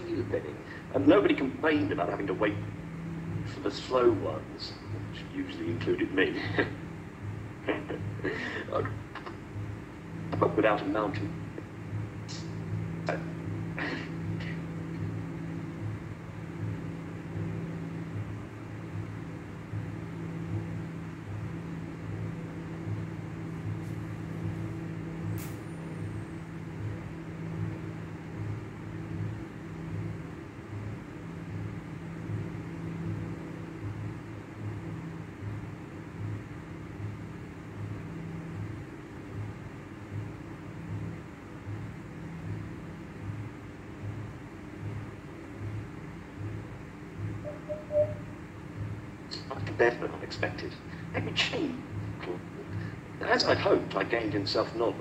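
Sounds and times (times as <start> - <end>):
throbbing mechanical hum: 0.0 - 55.0.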